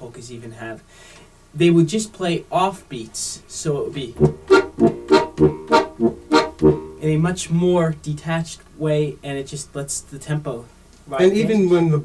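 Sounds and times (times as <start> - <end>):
button accordion stabs: 4.2 - 7.2.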